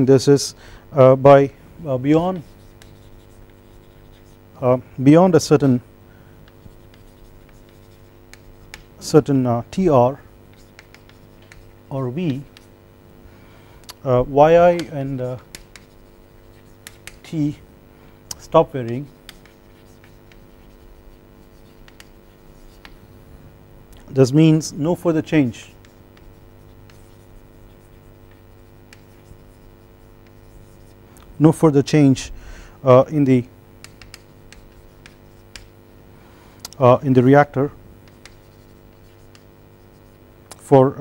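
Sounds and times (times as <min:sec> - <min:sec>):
low electrical hum: 0:00.0 - 0:41.0
chalk tapping and scratching: 0:02.1 - 0:04.5, 0:06.4 - 0:09.2, 0:09.8 - 0:12.8, 0:14.2 - 0:17.6, 0:18.3 - 0:23.1, 0:25.6 - 0:31.0, 0:33.2 - 0:35.8, 0:37.4 - 0:40.2.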